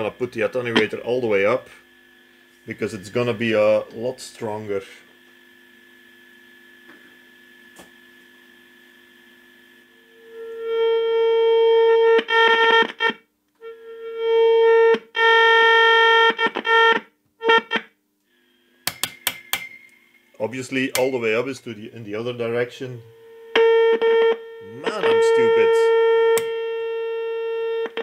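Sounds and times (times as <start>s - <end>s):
buzzy tone from loudspeaker: 21.7s - 28.0s.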